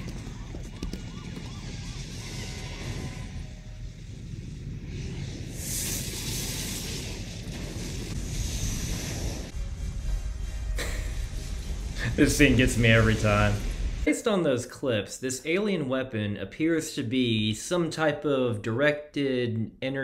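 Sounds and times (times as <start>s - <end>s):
deep explosion rumble: 1.0s - 14.1s
rushing hiss of flames: 1.8s - 14.1s
film score music: 8.1s - 14.1s.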